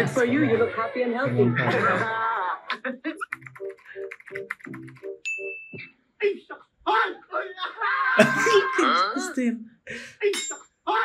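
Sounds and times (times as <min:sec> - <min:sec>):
rapid uneven clicking: 0:03.2 - 0:05.2
pulsing laughter: 0:08.2 - 0:08.8.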